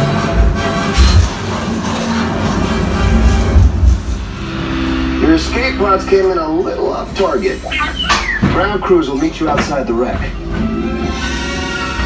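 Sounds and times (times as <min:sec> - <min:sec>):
low rumble: 0:00.0 - 0:08.0
held music chord: 0:00.0 - 0:08.2
recorded voice over speakers: 0:05.2 - 0:10.4.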